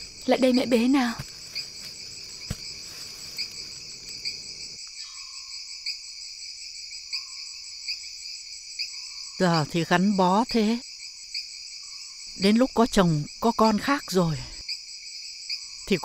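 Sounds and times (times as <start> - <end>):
insect chirring: 0.0 - 16.0.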